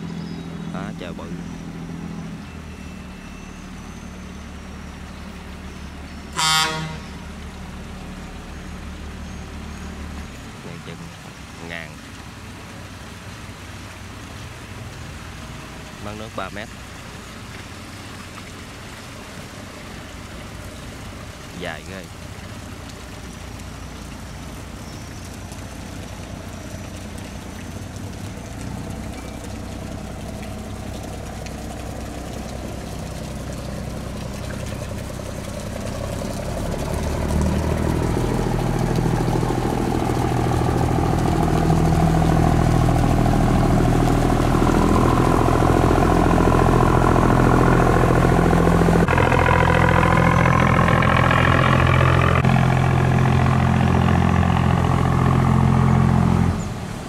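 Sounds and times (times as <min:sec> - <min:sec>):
barge diesel engine droning: 0:00.0 - 0:11.9, 0:14.6 - 0:57.0.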